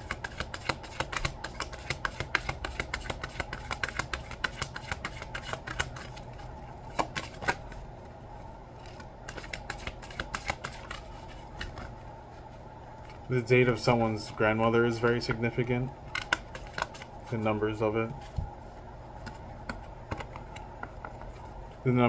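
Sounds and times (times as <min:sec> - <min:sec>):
cards shuffling: 0:00.0 - 0:07.8, 0:08.8 - 0:12.1, 0:16.1 - 0:18.5.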